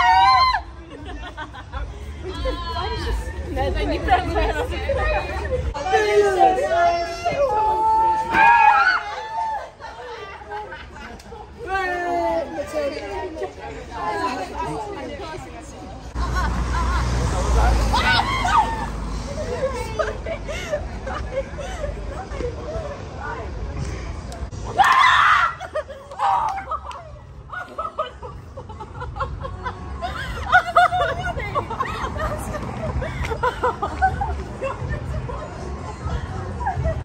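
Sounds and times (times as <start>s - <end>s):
women laughing: 0.0s - 6.4s, 8.8s - 11.9s, 16.0s - 23.3s, 25.2s - 37.0s
young women chattering: 0.8s - 7.8s, 9.8s - 16.2s, 18.5s - 23.8s, 30.0s - 37.0s.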